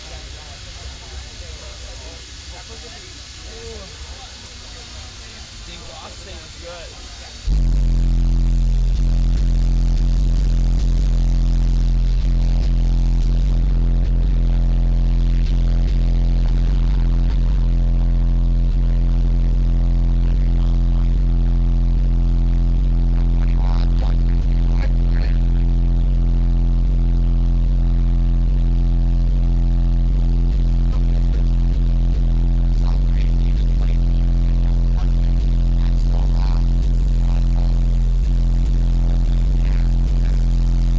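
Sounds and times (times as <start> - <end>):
very loud bass music: 0.0 - 40.9.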